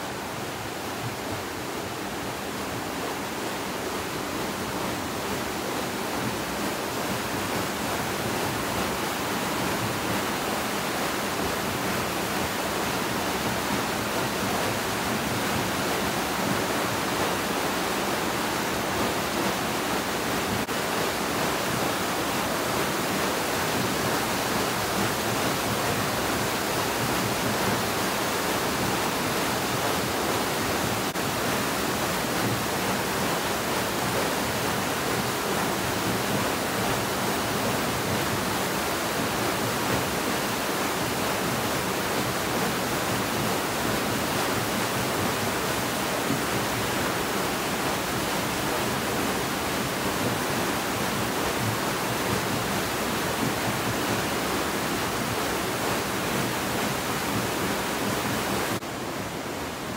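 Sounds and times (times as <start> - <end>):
water rushing through millrace: 0.0 - 59.9.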